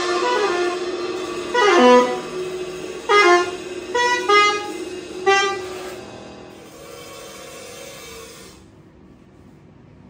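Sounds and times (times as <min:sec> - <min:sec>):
steady held tone: 0:00.0 - 0:08.6.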